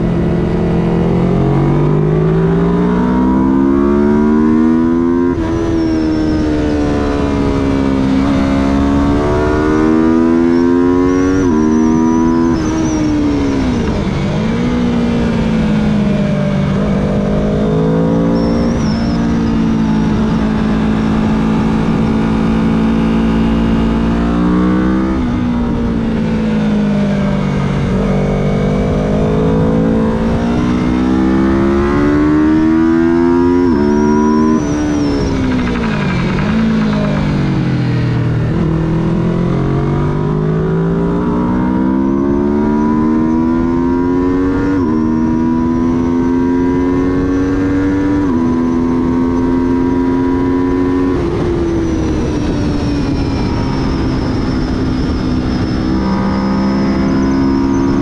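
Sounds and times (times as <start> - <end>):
motorcycle engine accelerating: 0.0 - 58.0.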